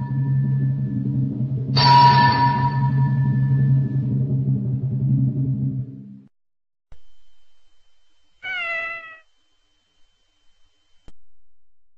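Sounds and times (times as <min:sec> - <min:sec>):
cat meowing: 0:08.4 - 0:09.3.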